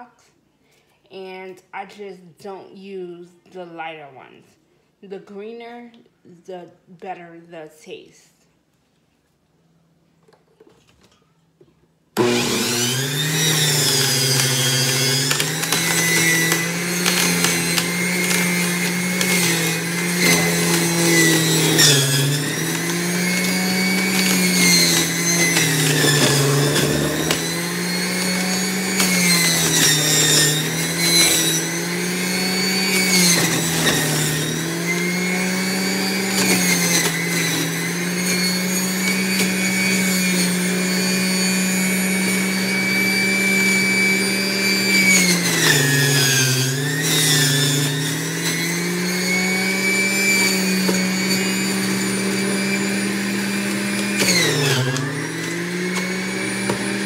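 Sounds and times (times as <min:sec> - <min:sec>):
juicer motor whining: 0:12.2 - 0:57.0.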